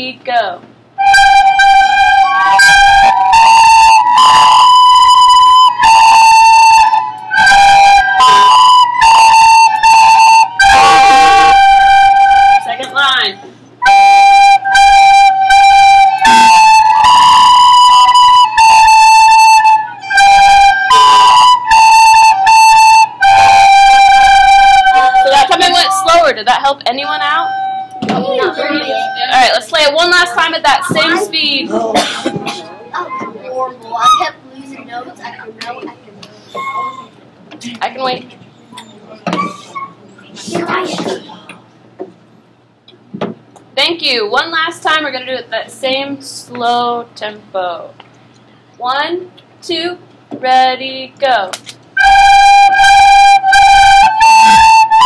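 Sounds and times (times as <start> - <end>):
children playing recorders: 1.0 - 13.2, 13.8 - 26.3, 27.1 - 29.5, 36.4 - 37.2, 52.0 - 55.0
children's voices: 27.2 - 41.6.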